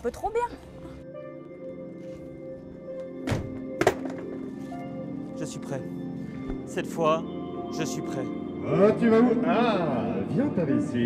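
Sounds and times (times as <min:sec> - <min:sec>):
background music with held notes: 0:00.0 - 0:11.0
thunks on a caravan door: 0:03.2 - 0:04.3.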